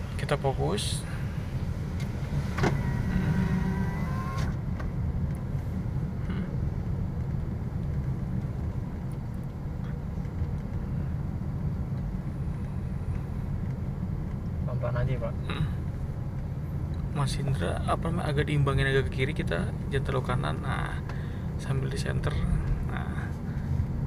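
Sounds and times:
car engine and tyre rumble: 0.0 - 24.0.

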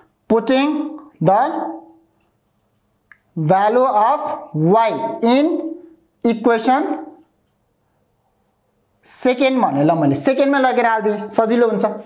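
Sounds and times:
marker writing on a whiteboard: 0.0 - 12.0.

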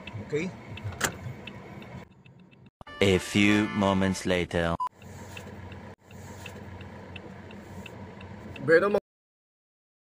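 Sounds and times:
car engine humming: 0.0 - 2.7, 5.0 - 9.0
indicator relay ticking: 0.0 - 2.7, 4.9 - 9.0.

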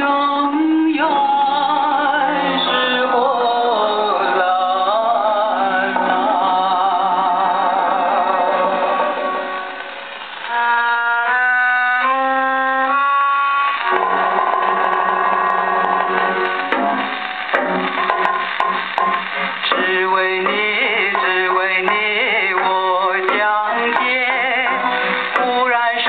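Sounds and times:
old gramophone record song: 0.0 - 26.0
harmonium steady notes: 8.2 - 19.7
drum strokes: 13.5 - 26.0.

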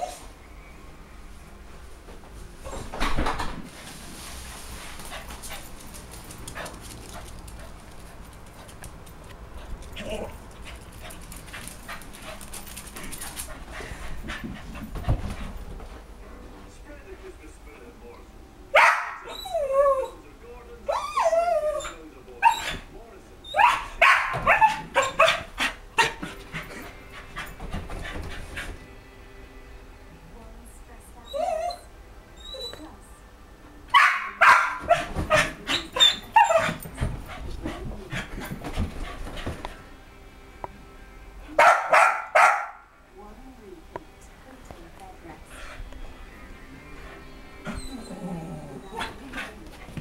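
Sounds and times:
dog barking: 18.8 - 19.3, 23.6 - 26.2, 33.9 - 36.8, 41.6 - 42.9
dog crying: 18.8 - 20.2, 20.9 - 22.8, 23.4 - 26.9, 31.2 - 32.9, 33.9 - 36.9, 47.6 - 49.4.

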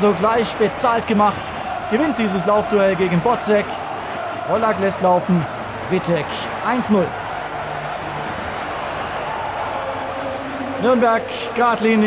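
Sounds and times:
man commentating: 0.0 - 3.8, 4.4 - 7.2, 10.2 - 12.0
stadium crowd voices: 0.0 - 12.0.

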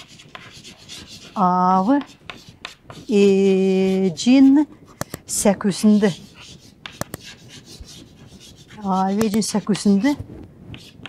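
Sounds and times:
chalk scratching on blackboard: 0.0 - 11.0
sharp chalk tap: 1.9 - 3.1, 6.4 - 8.4, 9.1 - 9.9.

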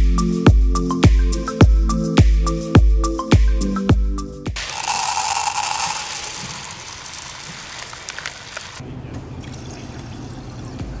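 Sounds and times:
running water: 4.6 - 8.8.

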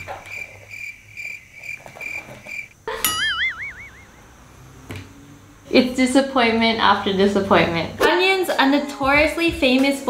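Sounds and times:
crickets chirping sound effect: 0.0 - 6.8
warbling whistle sound effect: 3.2 - 4.3.

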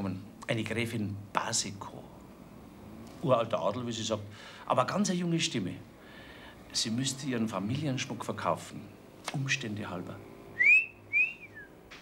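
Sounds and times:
man wolf-whistling: 10.6 - 11.8.

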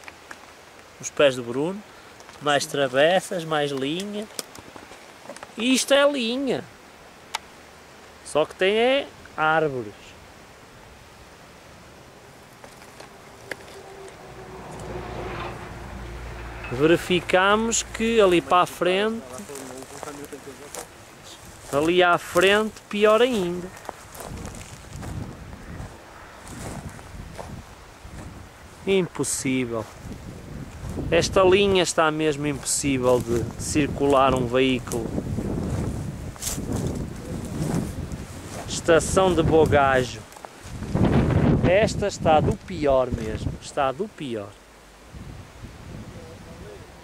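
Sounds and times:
flying insect buzzing: 11.8 - 18.7
low rumble: 13.0 - 18.6
wind buffeting microphone: 23.3 - 28.9, 29.8 - 43.7, 45.1 - 47.0.

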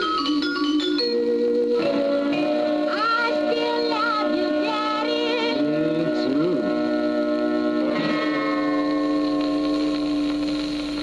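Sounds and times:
rhythm and blues band chord: 0.0 - 11.0.

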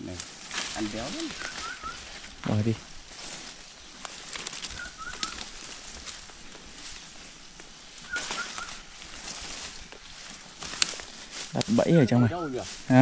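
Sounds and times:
footsteps through undergrowth: 0.0 - 13.0
bird calling short notes: 1.1 - 2.0, 4.7 - 5.5, 8.1 - 8.9.

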